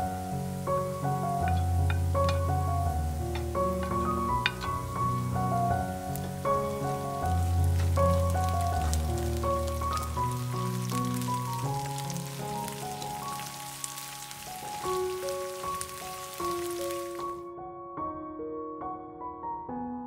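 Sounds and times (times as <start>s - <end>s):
oil sizzling and crackling: 0.0s - 17.4s
soft background music: 0.0s - 20.0s.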